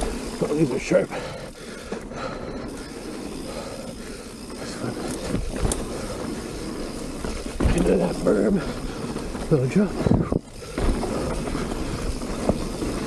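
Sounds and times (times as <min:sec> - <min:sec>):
bike tyres rolling on dirt: 0:00.0 - 0:13.0
bike knocks and rattles: 0:01.5 - 0:13.0.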